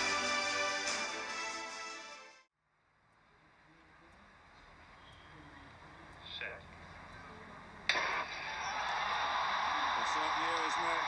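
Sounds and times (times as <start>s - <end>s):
stadium crowd noise: 7.6s - 11.0s.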